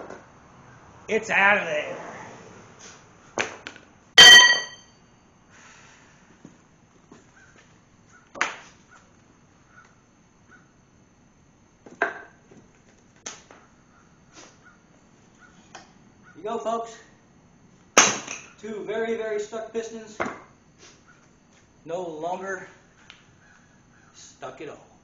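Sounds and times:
metal tool clanging on concrete: 4.2 - 5.0.

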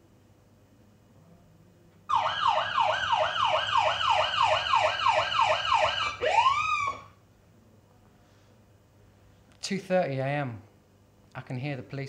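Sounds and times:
police siren: 2.1 - 7.2.

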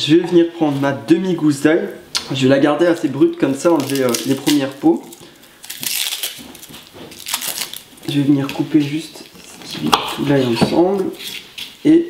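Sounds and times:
garlic skin crackling and rustling: 2.9 - 11.8.

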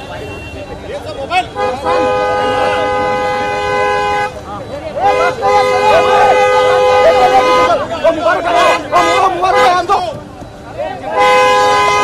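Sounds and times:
crowd of voices: 0.0 - 12.0.

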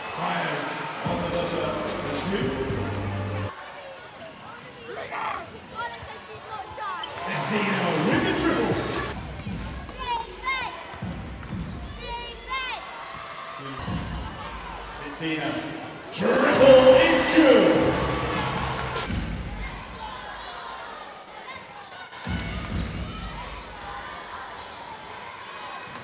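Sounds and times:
crowd voices: 0.0 - 13.0, 13.9 - 26.0.

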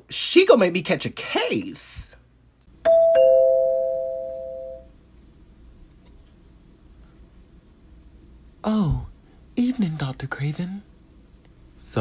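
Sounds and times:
two-note doorbell chime: 2.8 - 4.9.

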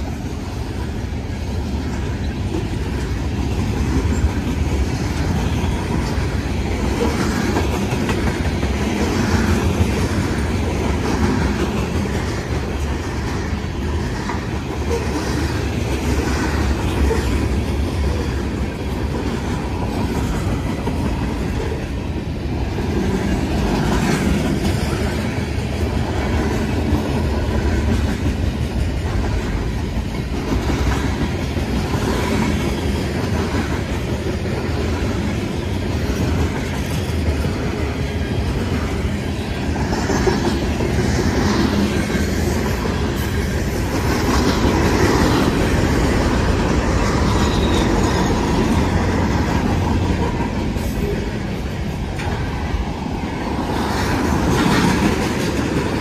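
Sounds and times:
wheels clicking over rail joints: 0.0 - 52.8, 53.5 - 56.0
train wheels rumbling on rail: 0.0 - 56.0.

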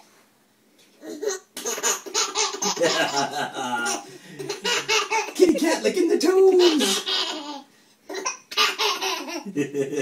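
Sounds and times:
baby laughing: 1.0 - 5.8, 6.4 - 9.6.

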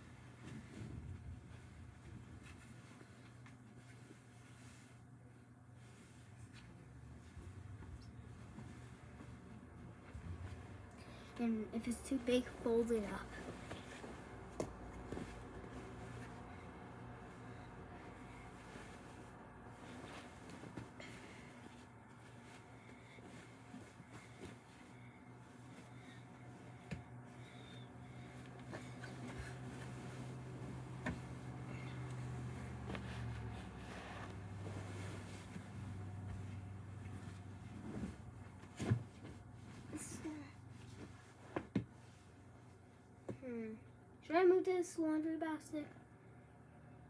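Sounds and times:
rustling of blanket being folded: 0.0 - 43.7
steady low hum: 0.0 - 47.0.

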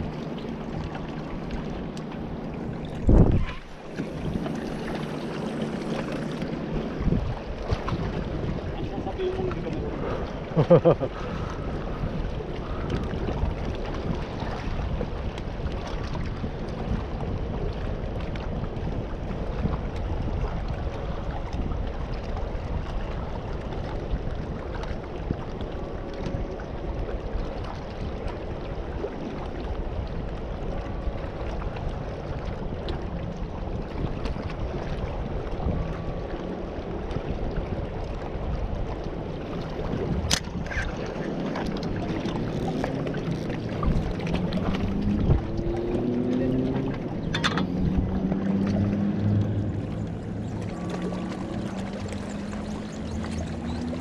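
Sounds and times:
low wavering hum: 0.0 - 54.0
water rushing at rocks: 0.0 - 54.0
wind on microphone: 0.0 - 54.0.

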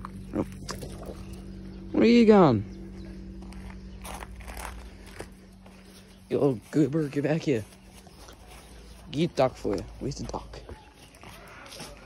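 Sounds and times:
steady low hum: 0.0 - 11.6.

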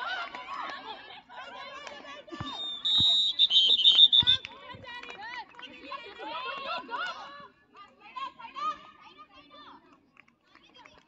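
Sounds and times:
girls shouting and calling out: 4.5 - 9.8.

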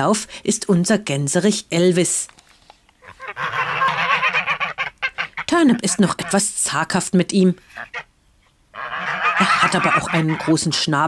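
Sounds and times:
geese honking: 3.0 - 6.5, 7.6 - 8.1, 8.7 - 10.9.

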